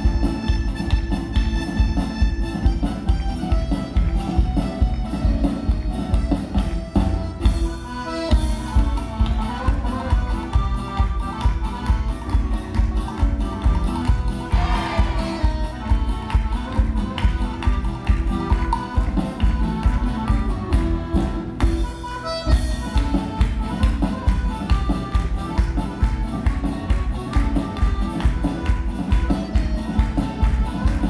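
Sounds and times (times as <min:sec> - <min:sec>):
lively folk dance music: 0:00.0 - 0:31.0.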